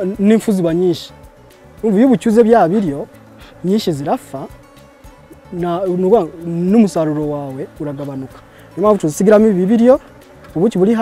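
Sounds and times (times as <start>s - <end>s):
bees buzzing past: 0.0s - 11.0s.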